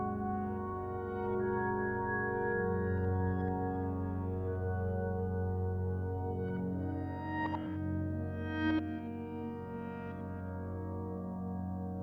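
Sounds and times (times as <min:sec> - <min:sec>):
ambient piano chords: 0:00.0 - 0:12.0.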